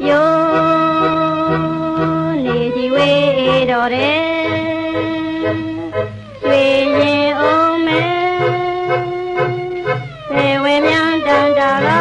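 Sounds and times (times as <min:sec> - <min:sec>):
song with steady beat: 0:00.0 - 0:12.0.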